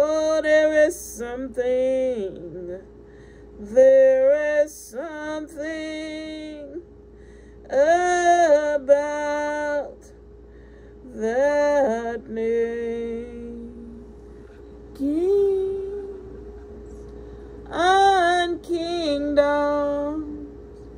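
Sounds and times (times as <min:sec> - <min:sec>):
woman singing slow worship song: 0:00.0 - 0:10.3, 0:10.9 - 0:20.9.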